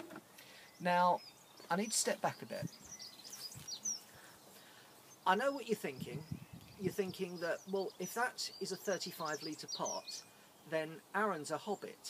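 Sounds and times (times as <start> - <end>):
birds chirping faintly: 0.0 - 12.0
faint outdoor background: 0.0 - 12.0.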